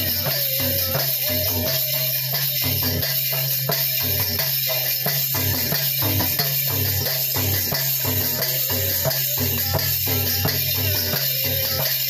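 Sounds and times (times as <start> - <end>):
fast drum rhythm: 0.0 - 12.0
jingling small percussion: 0.0 - 12.0.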